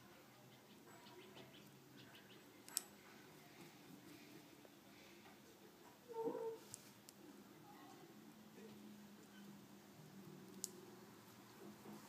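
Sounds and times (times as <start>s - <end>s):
faint clicks: 1.6s - 3.0s.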